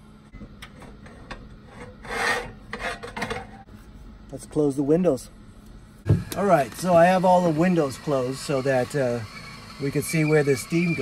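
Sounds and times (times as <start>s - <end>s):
kettle scraping on stove: 1.0s - 3.7s.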